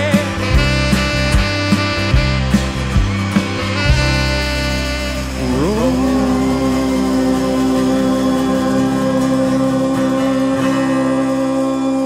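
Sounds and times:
instrumental rock band music: 0:00.0 - 0:11.8.

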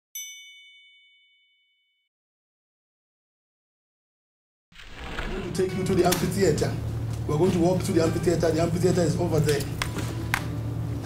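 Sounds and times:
bright chime: 0:00.2 - 0:02.0.

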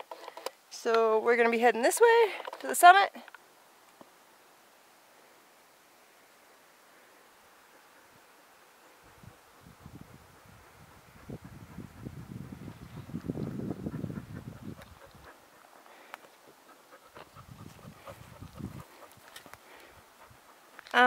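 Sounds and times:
dog panting: 0:09.0 - 0:20.8.

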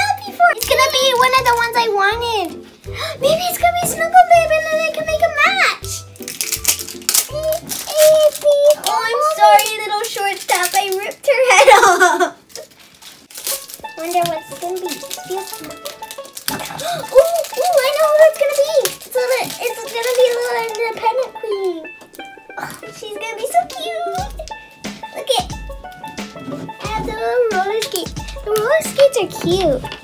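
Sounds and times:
children's wordless voices: 0:00.0 - 0:06.0, 0:07.3 - 0:12.3, 0:13.9 - 0:15.7, 0:16.6 - 0:21.9, 0:22.6 - 0:25.6, 0:26.4 - 0:30.0
plastic wrap crinkling: 0:00.5 - 0:01.8, 0:05.8 - 0:30.0
toy ball rattling: 0:05.8 - 0:11.2, 0:12.4 - 0:24.6, 0:25.4 - 0:30.0.

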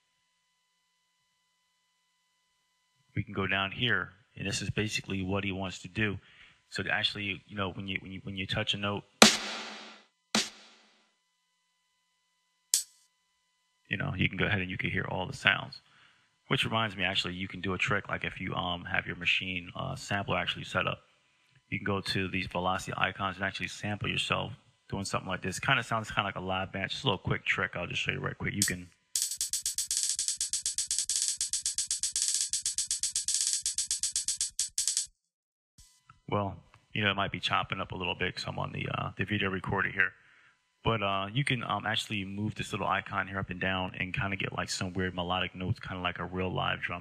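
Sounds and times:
rapid drum roll: 0:09.2 - 0:10.7
drum machine samples: 0:09.2 - 0:10.8, 0:28.6 - 0:35.1.

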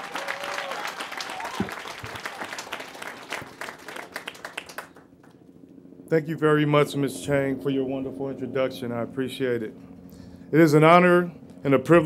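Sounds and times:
audience applauding: 0:00.0 - 0:05.3.

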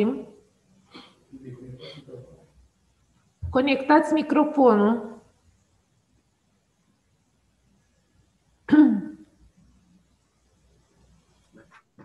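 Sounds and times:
person clearing throat: 0:01.0 - 0:02.2, 0:08.7 - 0:09.2.

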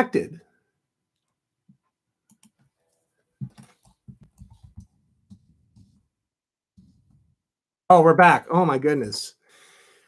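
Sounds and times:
computer keyboard and mouse clicking: 0:02.3 - 0:02.6, 0:03.4 - 0:05.4.

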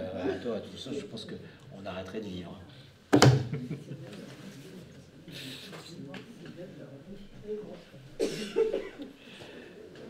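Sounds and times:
person coughing: 0:08.2 - 0:09.0.

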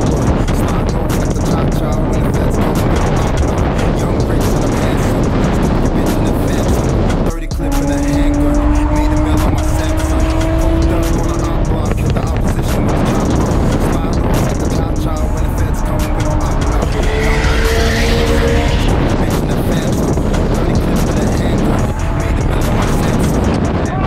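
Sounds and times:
car engine droning: 0:00.0 - 0:24.0
music playing: 0:00.0 - 0:24.0.

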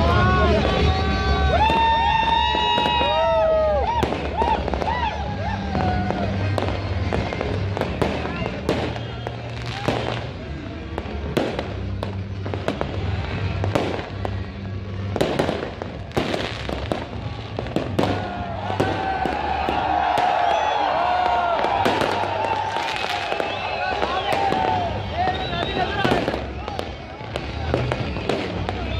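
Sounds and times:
fireworks bangs and crackles: 0:00.0 - 0:28.9.

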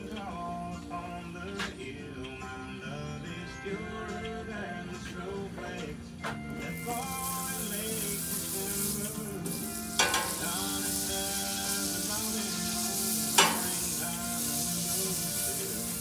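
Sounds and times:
butter sizzling on a griddle: 0:06.7 - 0:16.0.

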